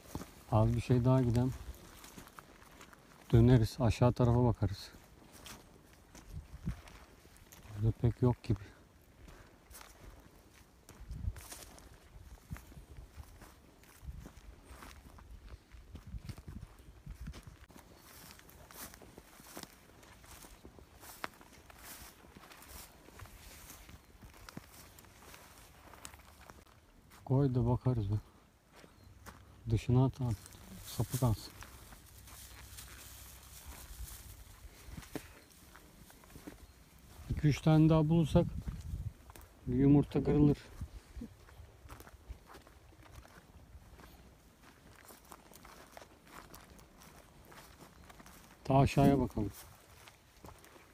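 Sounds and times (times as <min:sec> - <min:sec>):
footsteps on gravel and dry grass: 0:00.0 - 0:50.9.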